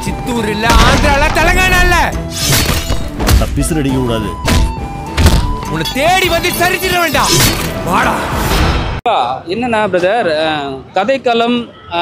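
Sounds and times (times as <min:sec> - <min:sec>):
dramatic music: 0:00.5 - 0:09.0.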